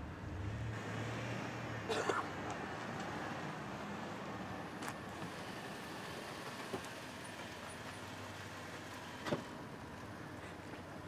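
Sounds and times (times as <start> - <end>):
car rolling to a stop: 4.7 - 11.0.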